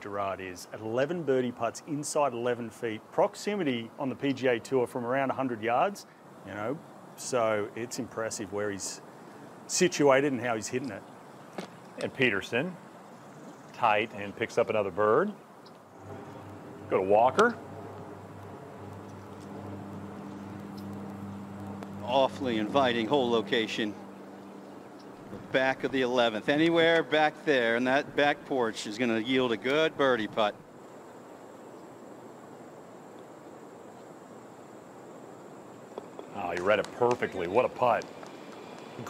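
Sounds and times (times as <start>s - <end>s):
faint outdoor hiss: 0.0s - 39.0s
steady low hum: 0.0s - 39.0s
faint ticks: 37.9s - 39.0s.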